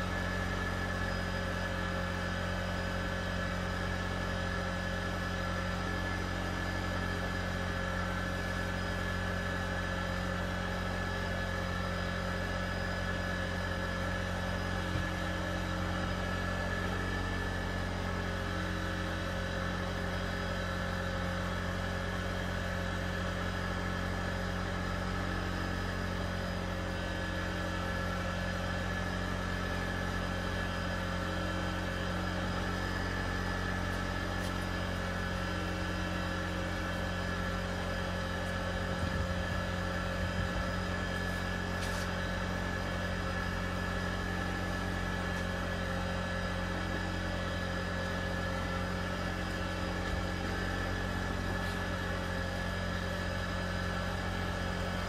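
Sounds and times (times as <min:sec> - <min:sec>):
engine idling: 0:00.0 - 0:55.0.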